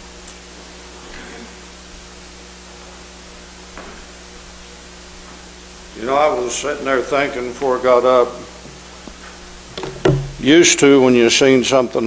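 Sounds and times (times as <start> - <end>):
low electrical hum: 0.0 - 12.0
sound system hiss: 5.5 - 12.0
faint knock: 9.8 - 10.5.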